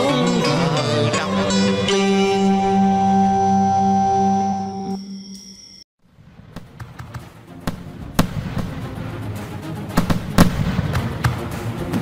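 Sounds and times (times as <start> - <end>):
fireworks sharp bangs: 6.1 - 9.1, 9.9 - 12.0.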